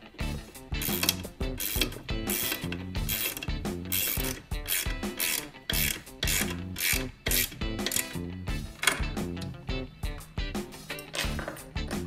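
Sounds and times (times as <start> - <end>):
background music with a beat: 0.0 - 12.0
ratchet wrench clicking: 0.8 - 9.1.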